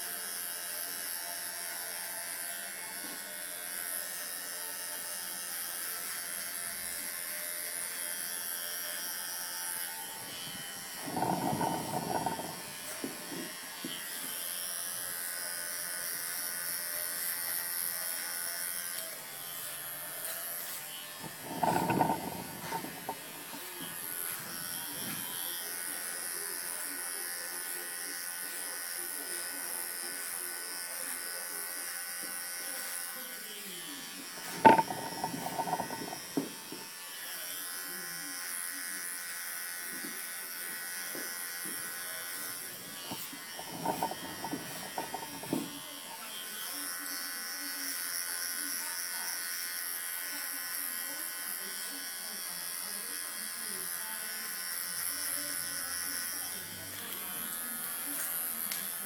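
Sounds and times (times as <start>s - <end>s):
electric hair clipper buzzing: 0.0s - 59.0s.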